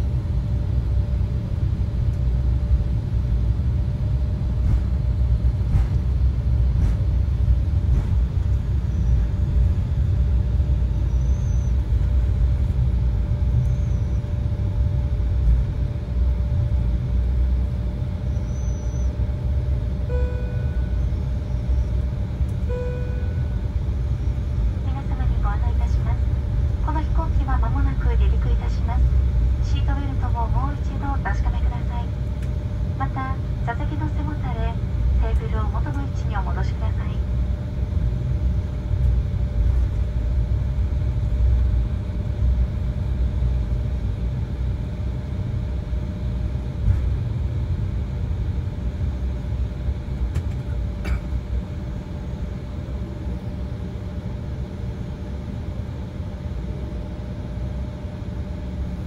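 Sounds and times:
airliner engines rumbling: 0.0s - 59.0s
constant cabin hum: 0.0s - 59.0s
announcement over loudspeakers: 24.8s - 32.2s, 33.0s - 37.3s.

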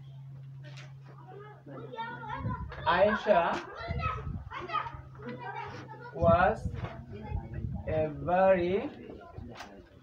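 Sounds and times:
children chattering: 0.0s - 10.0s
low steady hum: 0.0s - 10.0s.

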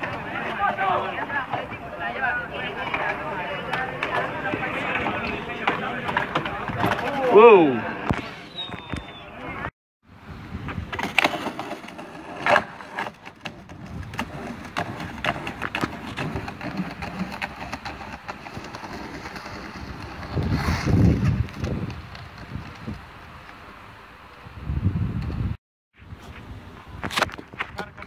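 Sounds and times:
skateboard wheels rolling on bricks: 0.0s - 9.6s, 10.5s - 28.0s
skateboard clacks and knocks: 10.9s - 20.3s.

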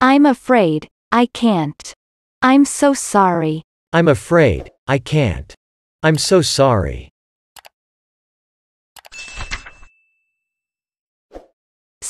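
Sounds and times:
bright bell ding: 9.1s - 10.1s.

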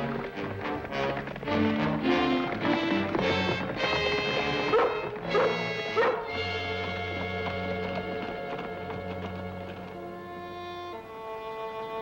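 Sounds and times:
orchestral score music: 0.0s - 12.0s
dog yelps: 4.7s - 6.3s.

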